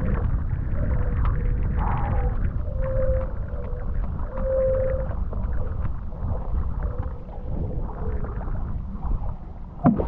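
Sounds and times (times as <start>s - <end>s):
faint water splashes: 0.0s - 10.0s
wind buffeting microphone: 0.0s - 10.0s
thin humming whistle: 1.9s - 5.6s.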